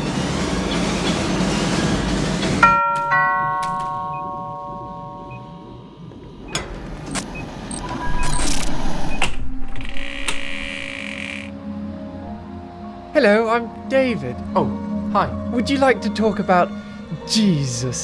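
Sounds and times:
film soundtrack: 0.0 - 18.0
two-note doorbell chime: 2.6 - 6.0
clicks: 6.5 - 11.5.

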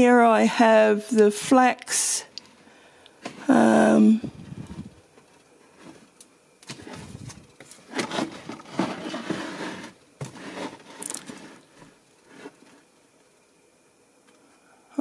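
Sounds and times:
plastic tub scraping on shelf: 6.7 - 12.8.

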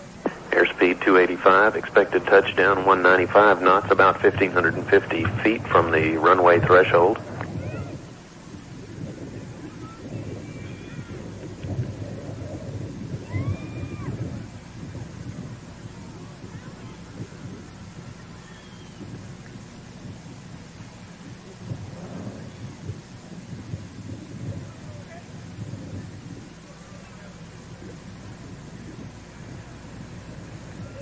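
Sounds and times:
wind buffeting microphone: 0.0 - 31.0
faint short whistles: 18.4 - 19.0.

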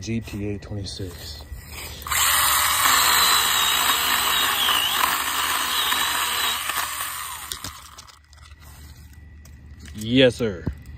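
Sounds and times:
battery chainsaw cutting branch: 2.0 - 8.2.

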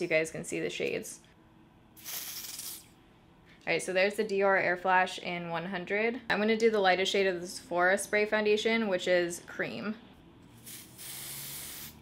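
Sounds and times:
aerosol spray hiss: 2.0 - 2.8, 10.6 - 12.0.

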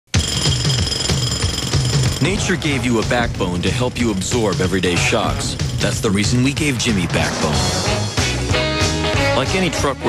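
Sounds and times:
music: 0.1 - 10.0
jackhammer pounding: 0.2 - 3.7, 5.3 - 6.7.

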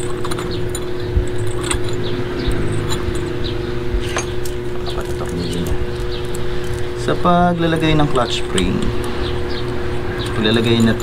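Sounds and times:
metal springs clinking: 0.0 - 11.0
steady machine hum: 0.0 - 11.0.

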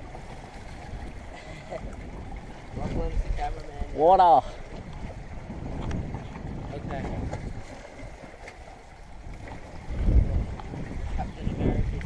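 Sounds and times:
waves lapping against rocks: 0.0 - 12.0
wind buffeting microphone: 0.0 - 12.0.

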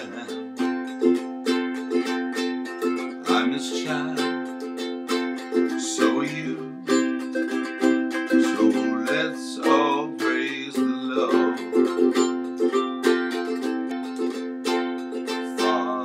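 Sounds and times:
ukulele strumming chords: 0.0 - 16.0.

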